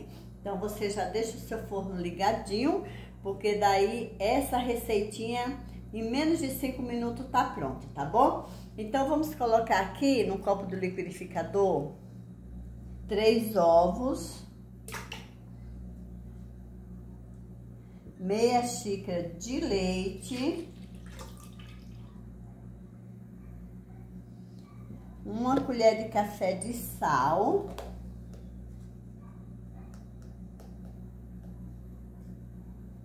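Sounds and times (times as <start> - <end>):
low electrical hum: 0.0 - 33.0
eggs pouring: 20.8 - 22.1.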